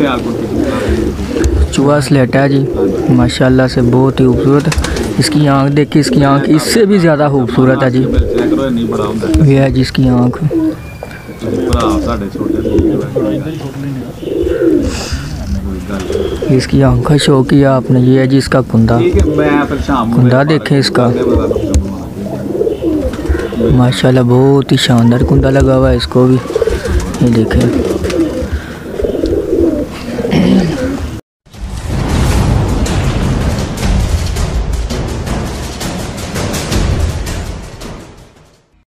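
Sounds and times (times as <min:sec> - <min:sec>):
pigeons cooing: 0:00.0 - 0:31.2.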